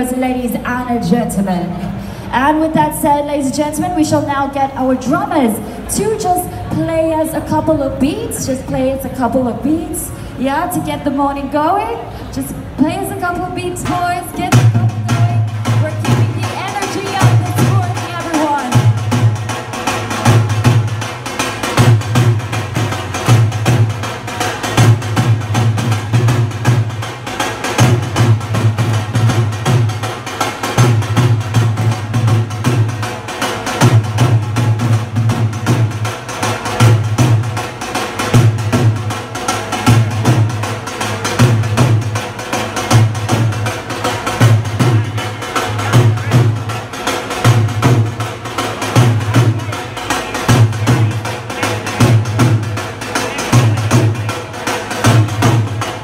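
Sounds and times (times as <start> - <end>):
hand drummers playing together: 12.6 - 56.0.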